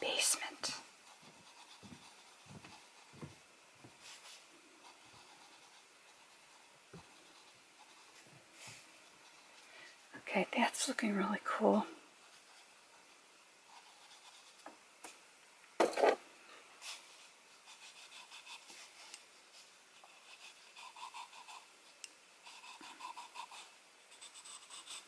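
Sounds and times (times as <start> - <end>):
charcoal pencil scratching on paper: 1.1 - 3.2, 4.1 - 9.6, 12.2 - 14.7, 17.6 - 19.2, 20.0 - 21.7, 22.4 - 25.0.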